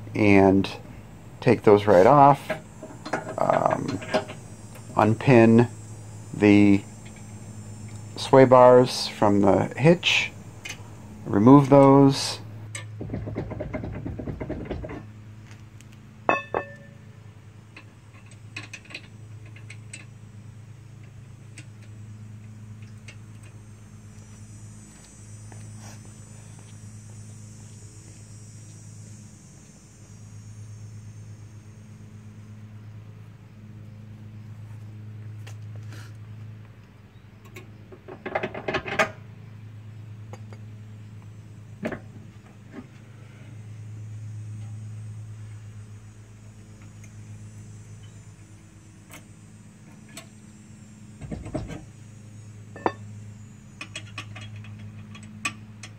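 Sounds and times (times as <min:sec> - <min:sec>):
steady low hum: 0:00.0 - 0:55.9
metal clanks: 0:01.8 - 0:04.4, 0:16.3 - 0:17.0
metal hitch hardware clattering: 0:16.3 - 0:17.0
ringing metal clink: 0:16.3 - 0:17.0, 0:52.7 - 0:53.1.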